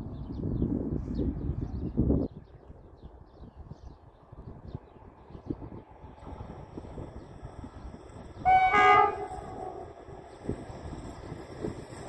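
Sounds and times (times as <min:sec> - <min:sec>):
wind noise on microphone: 0:00.0 - 0:12.0
locomotive horn blast: 0:08.4 - 0:10.2.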